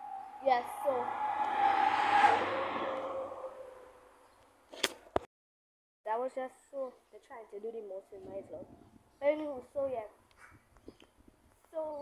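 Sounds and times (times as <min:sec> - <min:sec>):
vehicle passing by: 0:00.0 - 0:04.3.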